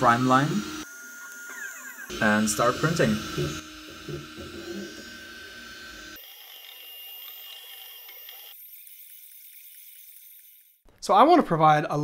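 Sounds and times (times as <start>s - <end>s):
high whining tones: 0.0s - 10.8s.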